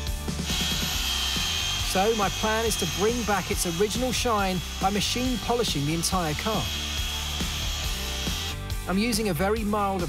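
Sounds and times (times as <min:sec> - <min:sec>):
background music: 0:00.0 - 0:10.0
electric polisher whining: 0:00.4 - 0:08.6.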